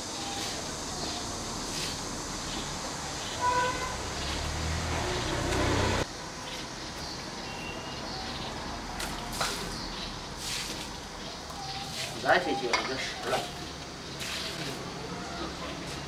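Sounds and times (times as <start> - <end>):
vehicle rumble: 0.0 - 12.2
outdoor background noise: 0.0 - 16.0
car horn toot: 3.4 - 4.0.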